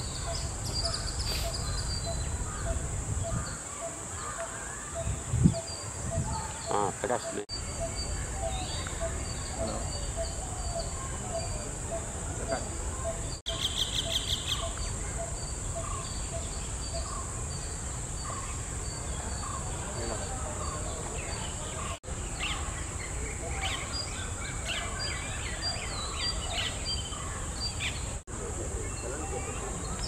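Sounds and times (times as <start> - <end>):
high insect drone: 0.0 - 21.4
small birds chirping: 0.0 - 30.0.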